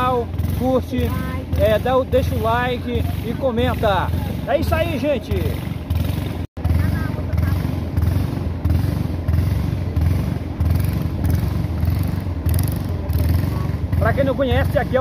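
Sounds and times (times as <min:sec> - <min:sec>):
boat motor droning: 0:00.0 - 0:15.0.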